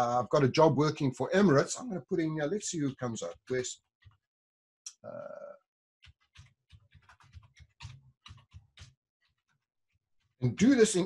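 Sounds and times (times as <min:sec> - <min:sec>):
computer keyboard keystrokes: 0:06.0 - 0:09.0.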